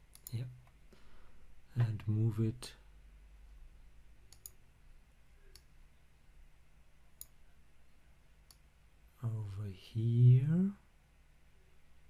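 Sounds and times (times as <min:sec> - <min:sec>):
computer mouse clicks: 0:00.0 - 0:00.8, 0:04.3 - 0:04.6, 0:07.2 - 0:07.4
low steady hum: 0:00.0 - 0:12.0.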